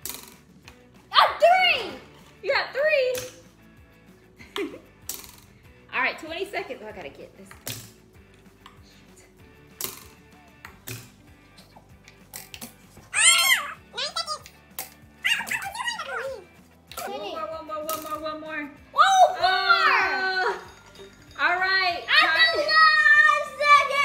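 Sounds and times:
child and woman shouting excitedly: 0:01.1 - 0:02.0, 0:13.1 - 0:14.4, 0:15.2 - 0:16.4, 0:18.9 - 0:20.6, 0:21.8 - 0:24.0.

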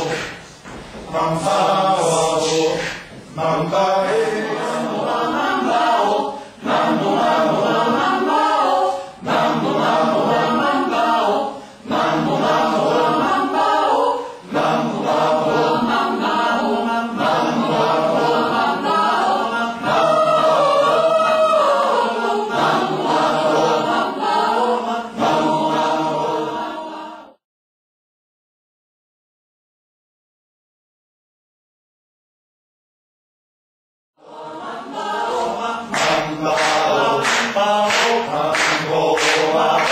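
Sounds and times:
mixed choir singing a cappella: 0:00.0 - 0:27.4, 0:34.2 - 0:39.9.

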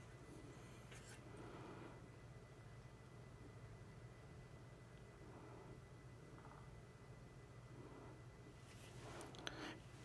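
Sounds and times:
soft handling noise: 0:00.0 - 0:01.4, 0:08.6 - 0:10.0
low steady hum: 0:00.0 - 0:10.0.

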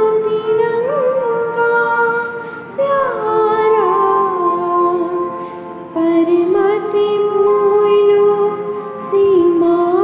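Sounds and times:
woman singing wordless melody: 0:00.0 - 0:10.0.

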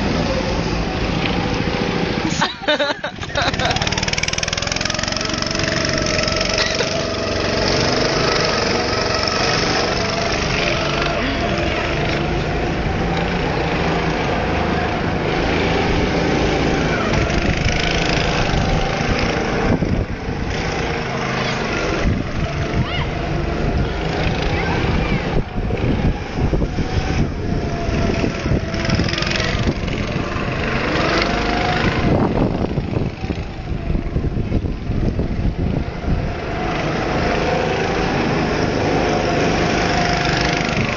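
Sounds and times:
go-kart engines running: 0:00.0 - 0:40.9.

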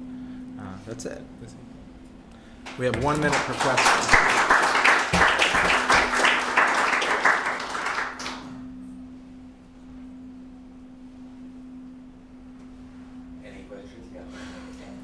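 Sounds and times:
low room hum: 0:00.0 - 0:15.0
audience applauding: 0:02.6 - 0:08.6.

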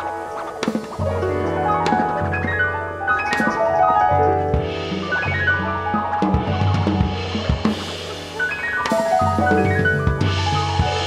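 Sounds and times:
jazz ensemble chord tones: 0:00.0 - 0:11.0
drum kit hits: 0:00.6 - 0:02.6, 0:03.2 - 0:11.0.

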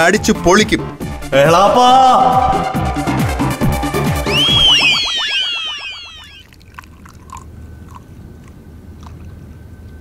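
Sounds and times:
electronic swoosh: 0:04.2 - 0:06.4.

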